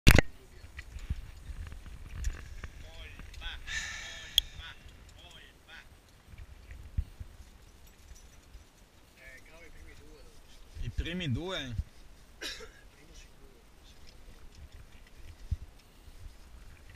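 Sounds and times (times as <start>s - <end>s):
low rumble of movement on microphone: 0.4s - 5.2s, 6.0s - 12.4s, 13.1s - 16.9s.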